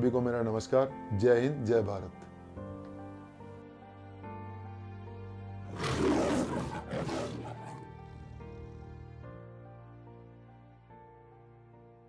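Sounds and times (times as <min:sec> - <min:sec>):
soft background music: 0:00.0 - 0:12.0
big cat roar: 0:05.7 - 0:07.9.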